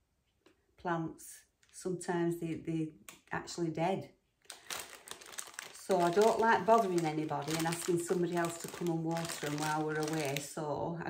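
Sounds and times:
plastic bag crinkling: 4.4 - 10.6.

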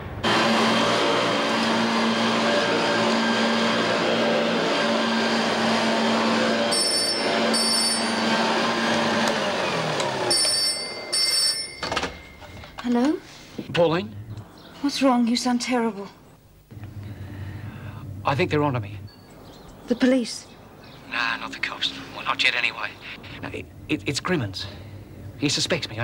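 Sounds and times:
vacuum cleaner motor: 0.2 - 12.1
telephone double ring: 6.7 - 8.3, 10.2 - 12.7.

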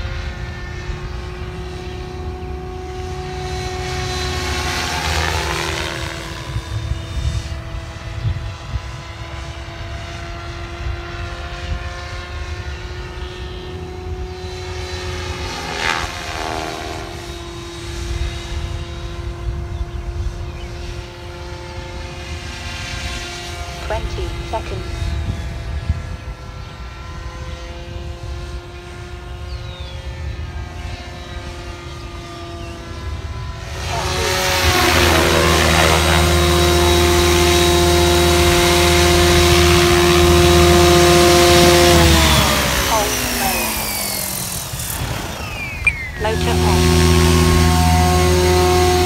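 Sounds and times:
rc helicopter rotor whine: 0.0 - 49.0.

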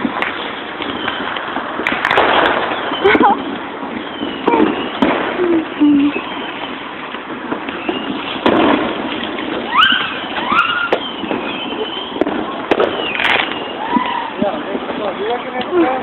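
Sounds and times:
fireworks bangs: 0.0 - 16.0.

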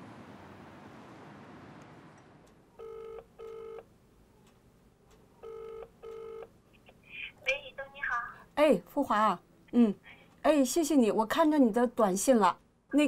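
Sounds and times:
telephone ringback tone: 2.8 - 3.8, 5.4 - 6.5.

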